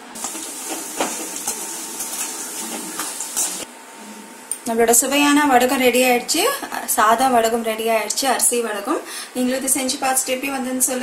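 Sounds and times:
food sizzling in hot oil: 0.0s - 3.7s.

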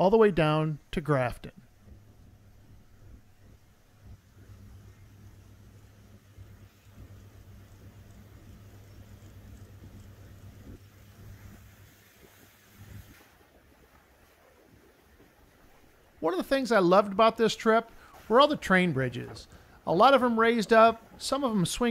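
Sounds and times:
faint boat engines droning: 0.8s - 21.9s.

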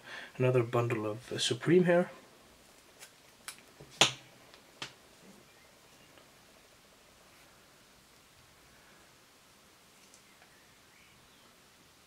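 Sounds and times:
fibre snapping: 2.9s - 5.0s.

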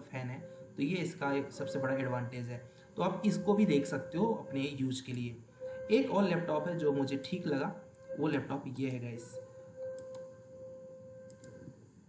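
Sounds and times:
faint steady hum: 0.0s - 12.0s
computer mouse clicks: 9.8s - 10.3s, 11.3s - 11.8s.

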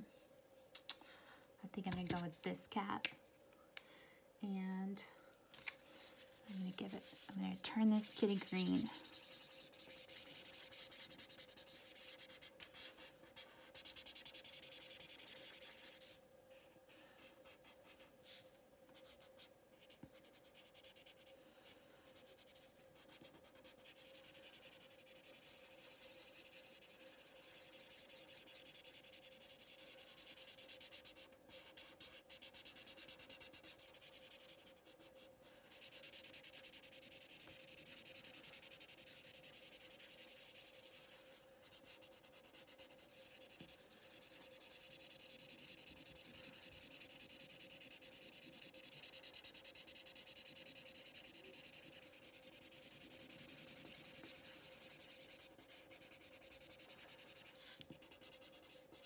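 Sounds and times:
marker rubbing on paper: 6.7s - 16.2s, 22.2s - 59.0s.

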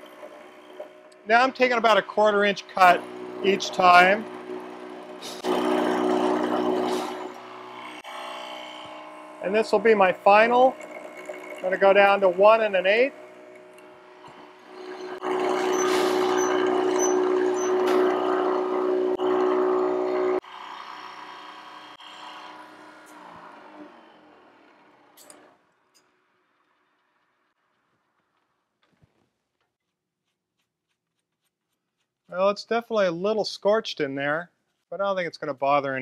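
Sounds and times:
milling machine hum: 2.6s - 12.4s, 13.1s - 25.5s
milling machine cutting wood: 2.6s - 25.5s.

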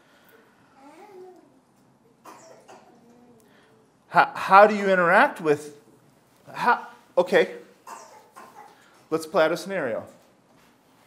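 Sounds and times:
soft cough-like burst: 2.2s - 3.0s, 7.8s - 8.8s.

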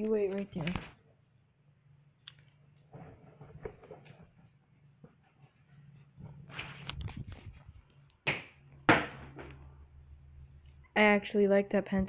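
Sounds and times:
rustling handling noise: 2.4s - 8.2s.

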